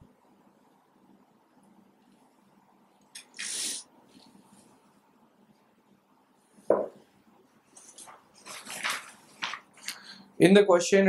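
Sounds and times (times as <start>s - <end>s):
paper rustling: 7.7s - 10.1s.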